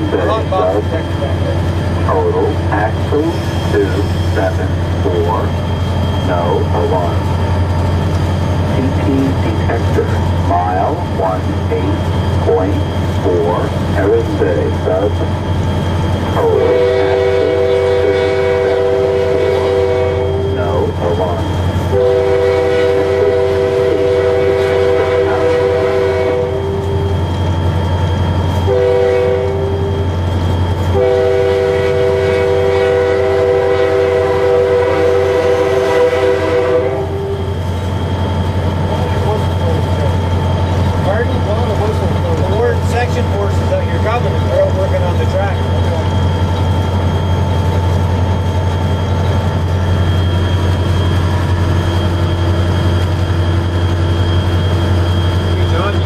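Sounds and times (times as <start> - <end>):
diesel engine droning: 0.0 - 56.0
locomotive horn blasts: 16.4 - 27.2, 28.6 - 30.1, 30.8 - 37.7.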